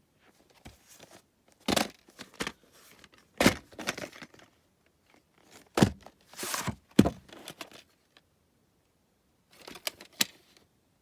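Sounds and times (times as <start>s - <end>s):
cardboard sleeve rustling: 0.2s - 1.3s, 5.2s - 7.8s
cardboard scrapes: 6.3s - 6.8s.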